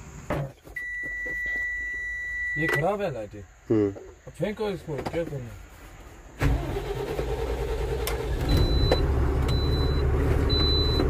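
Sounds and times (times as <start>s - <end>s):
dashboard warning beeper: 0.8s - 3.0s, 8.4s - 11.0s.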